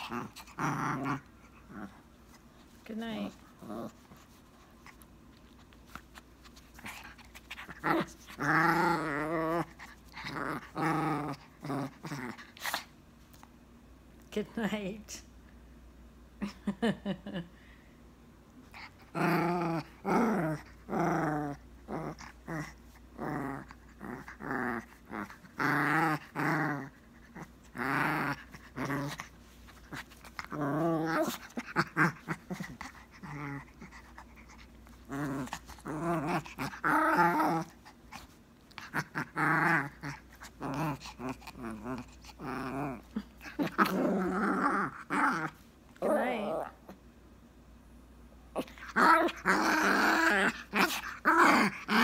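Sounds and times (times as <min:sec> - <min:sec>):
small dog play-growling: 0:00.0 - 0:13.5, 0:18.6 - 0:47.0, 0:48.5 - 0:52.0.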